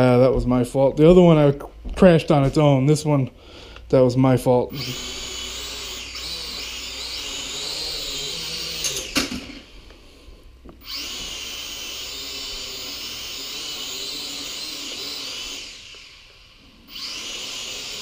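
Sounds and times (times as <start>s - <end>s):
toy drone motors whining: 4.7s - 10.0s, 10.8s - 18.0s.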